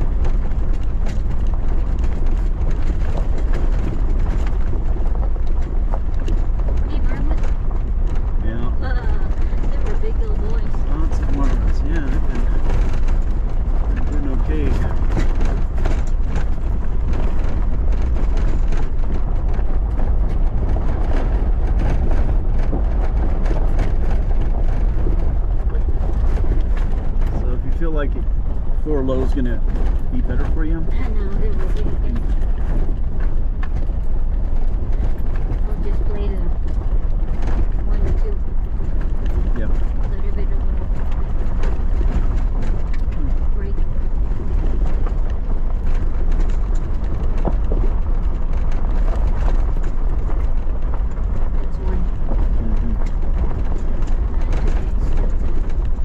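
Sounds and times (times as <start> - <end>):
stones rattling and knocking: 0.0 - 56.0
vehicle driving on gravel: 0.0 - 56.0.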